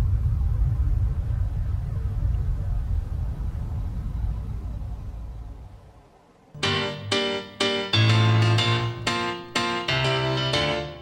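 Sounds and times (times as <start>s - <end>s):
low even rumble: 0.0s - 6.6s.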